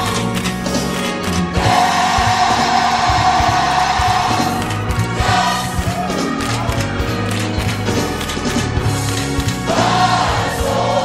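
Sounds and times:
steady bass line: 0.0 - 11.0
gospel choir singing: 1.5 - 6.4, 9.4 - 11.0.

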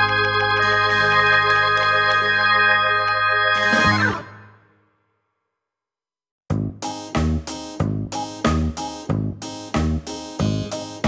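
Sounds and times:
sustained keyboard chords: 0.0 - 4.5.

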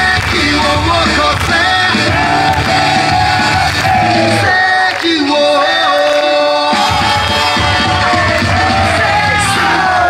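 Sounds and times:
pulsing beat music over speakers: 0.0 - 10.0.

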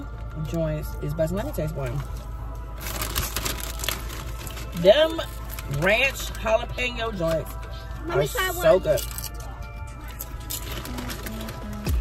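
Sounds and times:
potato chips crunching: 1.9 - 6.4, 8.8 - 12.0.

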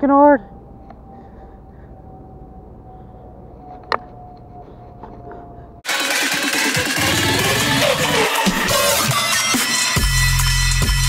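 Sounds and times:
electronic trap music: 5.8 - 11.0.

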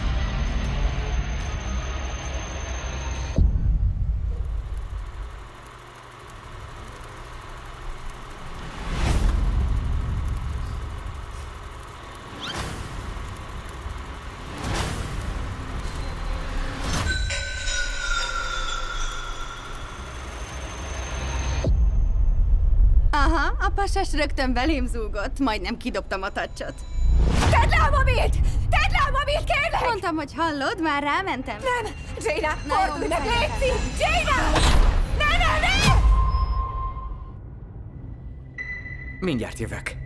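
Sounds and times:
low rumbling drone: 0.0 - 29.6
descending whistle-like tone: 35.9 - 37.5.

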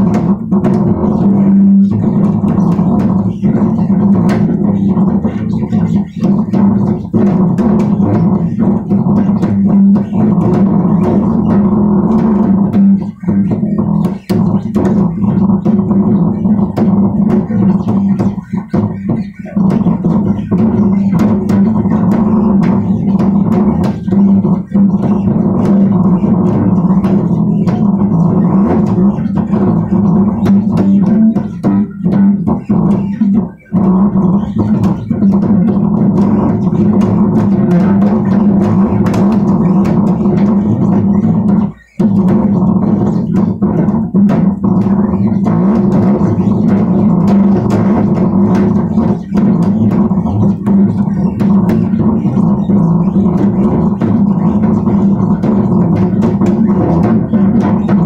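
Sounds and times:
bass guitar low notes: 0.0 - 58.0.

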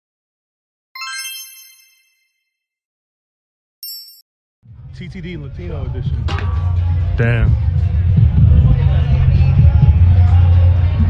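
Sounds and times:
bright chime: 1.0 - 2.4.

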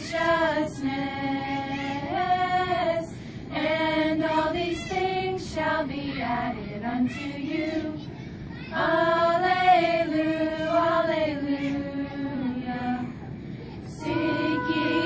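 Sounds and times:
women singing together: 0.0 - 8.0, 8.7 - 13.3, 13.9 - 15.0.

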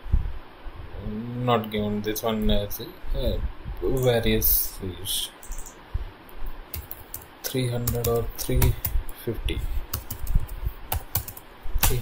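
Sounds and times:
computer keyboard key presses: 5.4 - 5.8, 6.7 - 9.0, 9.9 - 12.0.

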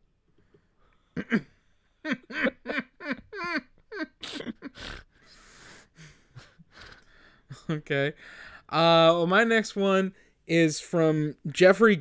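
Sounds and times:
person laughing: 1.2 - 5.2, 6.0 - 7.9.

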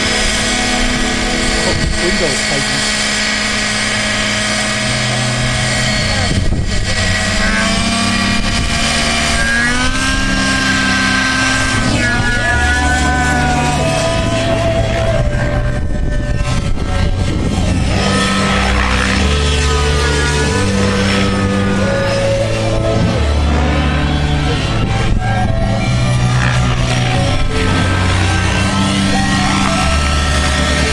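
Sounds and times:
model helicopter engine whine: 0.0 - 30.9.

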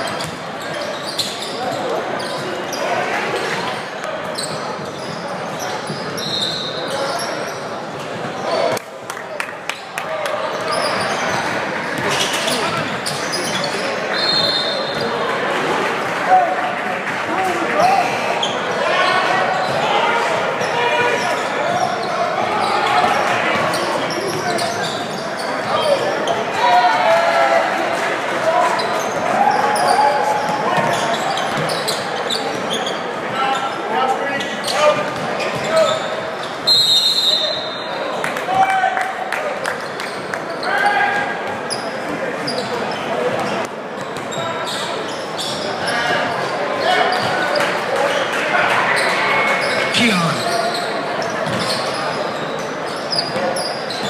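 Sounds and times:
echoing voices: 49.8 - 50.7.

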